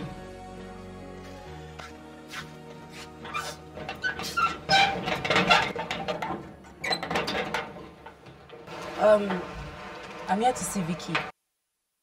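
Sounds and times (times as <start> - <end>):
metal gate lock clanking: 3.2 - 8.6.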